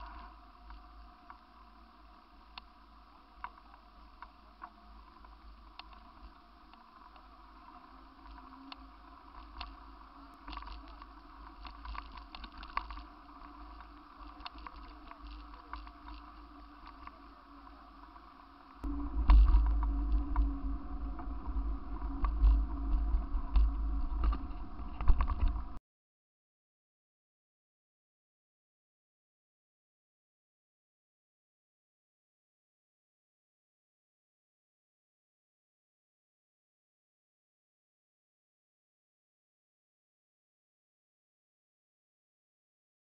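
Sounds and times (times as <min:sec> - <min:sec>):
low ride rumble: 0:18.8 - 0:25.8.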